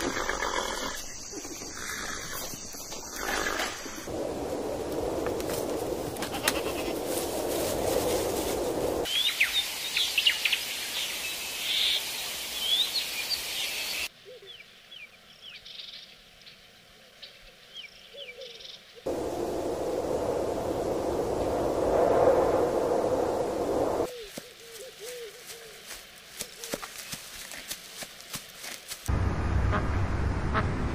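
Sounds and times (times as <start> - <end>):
small birds chirping: 9.1 - 19.0.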